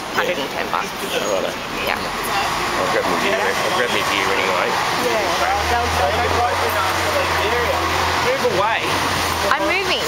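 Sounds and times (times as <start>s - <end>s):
city street traffic: 0.0s - 10.0s
people talking: 0.1s - 10.0s.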